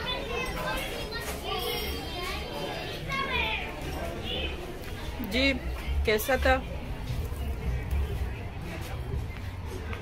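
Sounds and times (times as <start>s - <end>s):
children talking and playing: 0.0s - 10.0s
indistinct chatter of diners: 0.0s - 10.0s.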